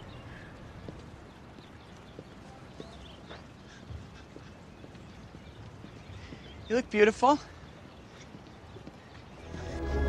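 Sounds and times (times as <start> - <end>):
orchestral film score: 9.4 - 10.0.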